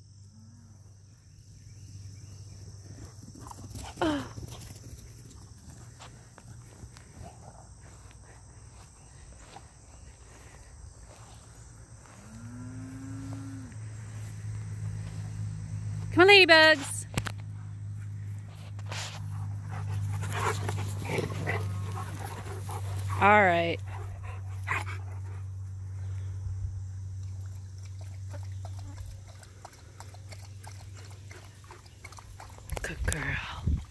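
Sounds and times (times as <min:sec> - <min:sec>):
cow mooing: 0:12.3 - 0:13.8
dog panting: 0:19.2 - 0:25.5.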